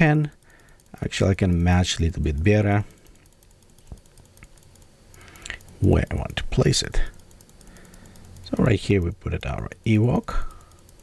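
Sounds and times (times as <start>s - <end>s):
computer control clicks: 0.0s - 11.0s.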